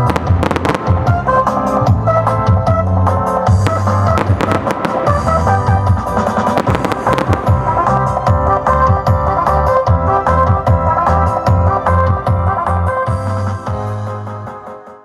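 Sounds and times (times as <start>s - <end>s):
fireworks cracking rapidly: 0.0s - 2.2s, 3.5s - 9.2s
keyboard music with steady beat: 0.0s - 15.0s.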